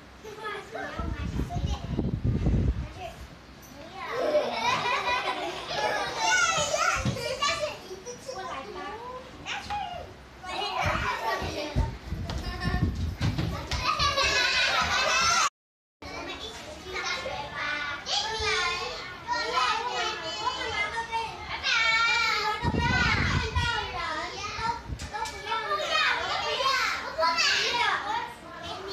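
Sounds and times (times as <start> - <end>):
young children talking and calling out: 0.0 - 28.9.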